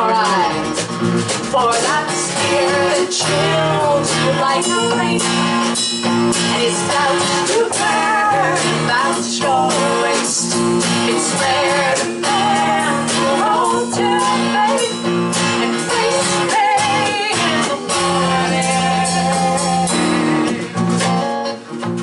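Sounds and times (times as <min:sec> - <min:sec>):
women singing with vibrato: 0:00.0 - 0:00.8, 0:01.5 - 0:20.8
folk-rock band playing: 0:00.0 - 0:22.0.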